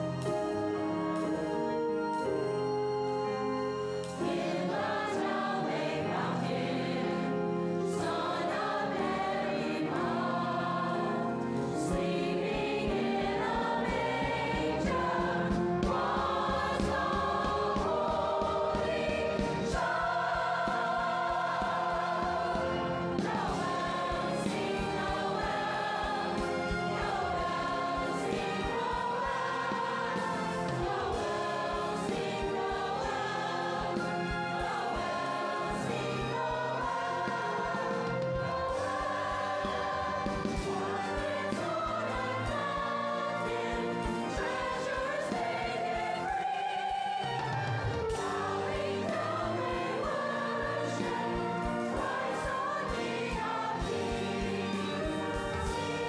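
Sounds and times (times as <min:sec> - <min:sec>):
choir singing in harmony: 0:00.0 - 0:56.0.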